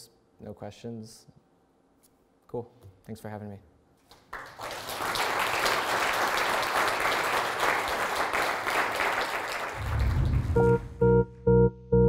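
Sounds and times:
audience applauding: 0:04.1 - 0:10.9
keyboard music: 0:10.4 - 0:12.0.

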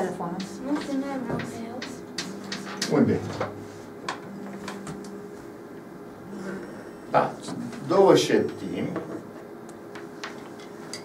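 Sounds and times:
chalk ticking on blackboard: 0:00.4 - 0:03.0.

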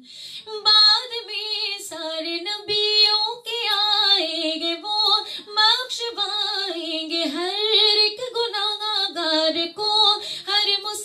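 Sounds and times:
woman singing devotional song: 0:00.0 - 0:11.0.

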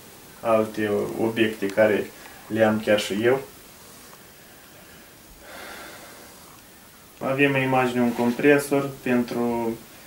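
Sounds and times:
faint room hiss: 0:00.0 - 0:10.0
soft breath out: 0:03.8 - 0:06.9.

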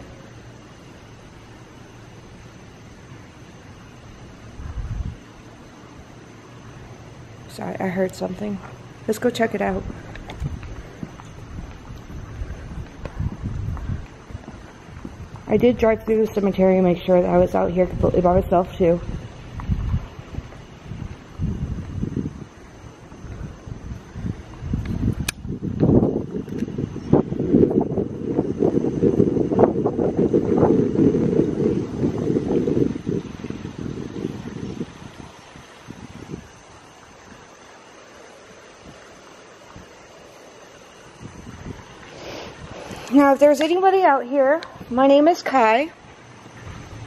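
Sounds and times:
wind rumbling on microphone: 0:00.0 - 0:47.0
low bumps: 0:08.4 - 0:22.4
sharp click: 0:24.8 - 0:25.4.

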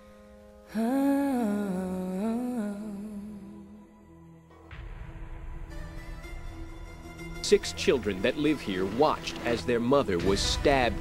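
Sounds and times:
wordless hummed voice: 0:00.7 - 0:03.9.

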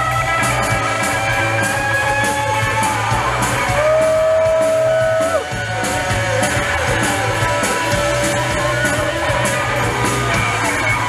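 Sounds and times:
drum kit with cymbal strikes: 0:00.0 - 0:11.0
electric bass: 0:00.0 - 0:11.0
electric guitar: 0:00.0 - 0:11.0.

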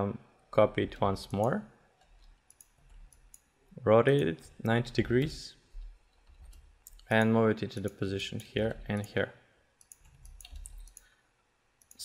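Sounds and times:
computer mouse clicks: 0:01.2 - 0:03.5, 0:04.6 - 0:09.2, 0:09.8 - 0:11.2, 0:11.8 - 0:12.0.

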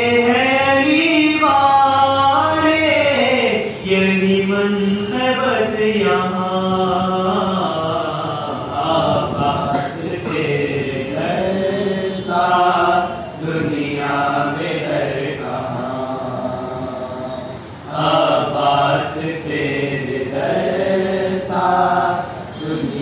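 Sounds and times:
man chanting unaccompanied: 0:00.0 - 0:23.0.

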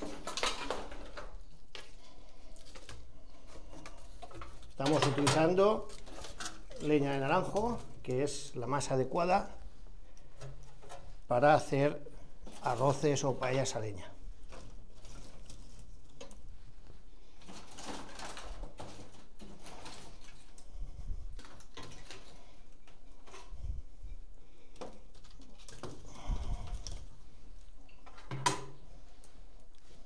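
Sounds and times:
wood fire crackling: 0:00.0 - 0:30.0
logs knocking and scraping: 0:02.6 - 0:08.5.

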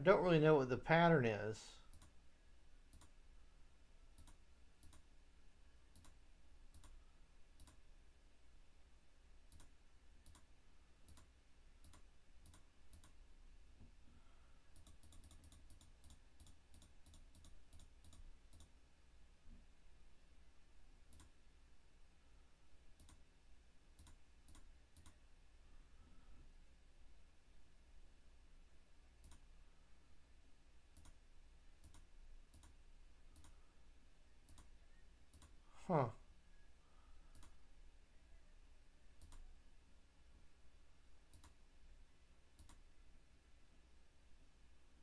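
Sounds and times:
computer mouse clicks: 0:01.9 - 0:02.2, 0:02.9 - 0:03.2, 0:04.2 - 0:05.1, 0:05.9 - 0:07.0, 0:07.6 - 0:07.8, 0:09.5 - 0:13.2, 0:14.7 - 0:18.7, 0:21.1 - 0:21.4, 0:23.0 - 0:23.2, 0:24.0 - 0:25.2, 0:29.2 - 0:29.5, 0:30.9 - 0:31.2, 0:31.8 - 0:33.6, 0:34.5 - 0:34.7, 0:35.3 - 0:35.6, 0:37.3 - 0:37.6, 0:39.2 - 0:39.5, 0:41.3 - 0:41.6, 0:42.6 - 0:42.8.

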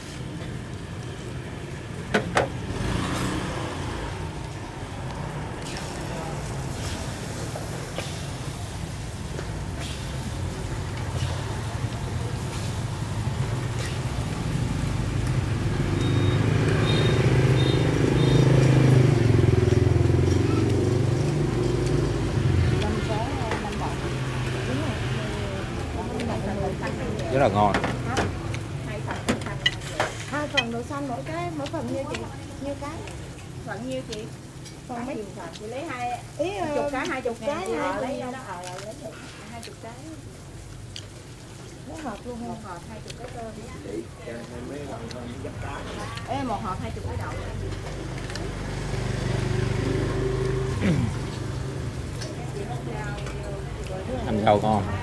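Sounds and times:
motorbike engine rumble: 0:00.0 - 0:35.0, 0:46.3 - 0:54.2
chatter of voices: 0:49.8 - 0:55.0.

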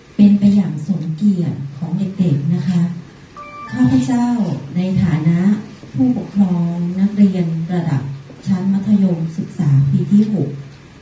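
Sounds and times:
short electronic jingle: 0:03.4 - 0:04.7.

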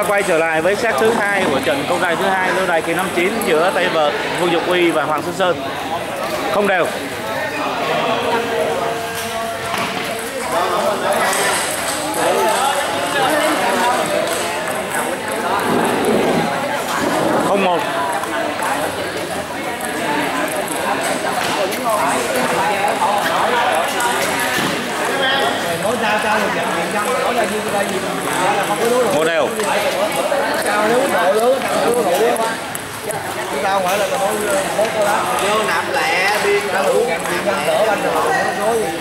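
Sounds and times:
background voices in hall: 0:00.0 - 0:39.0.

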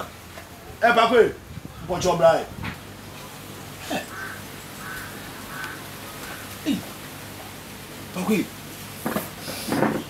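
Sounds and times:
short bird calls: 0:03.8 - 0:07.0.

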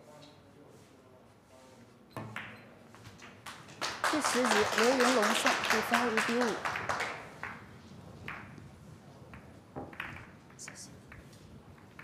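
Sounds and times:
audience applause: 0:03.7 - 0:07.6.

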